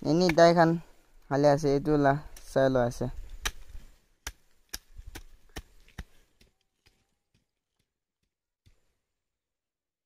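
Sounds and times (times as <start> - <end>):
hoe chopping into stony soil: 3.2 - 7.5.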